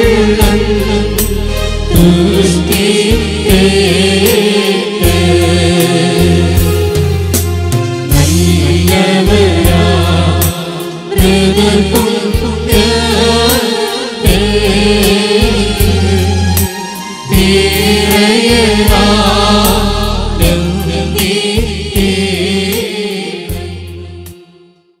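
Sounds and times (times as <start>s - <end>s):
choir singing a hymn: 0.0s - 7.2s, 8.1s - 24.4s
percussion beat: 0.0s - 22.8s
electronic keyboard: 0.0s - 24.5s.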